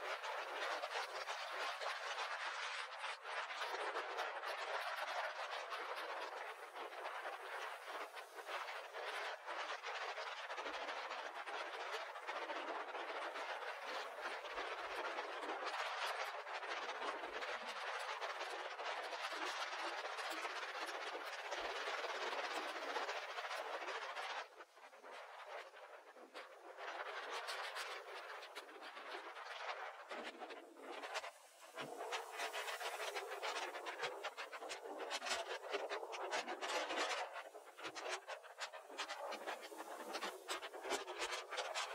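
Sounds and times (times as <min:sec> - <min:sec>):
wind on microphone: 0:00.0 - 0:41.9.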